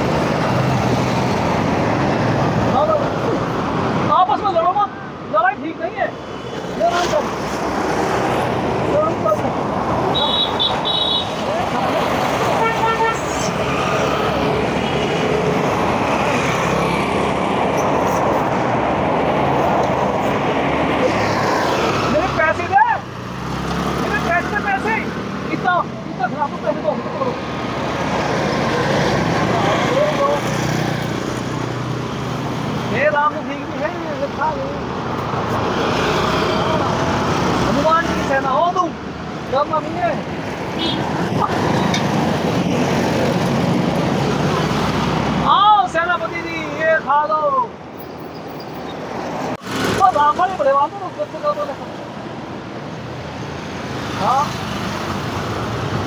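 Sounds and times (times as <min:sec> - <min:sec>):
road traffic noise: 0:00.0 - 0:56.0
vehicle horn tooting: 0:10.1 - 0:11.4, 0:40.8 - 0:41.0.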